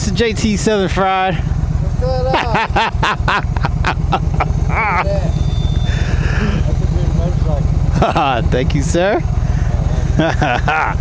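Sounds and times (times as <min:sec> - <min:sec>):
motorcycle idling: 0:00.0 - 0:11.0.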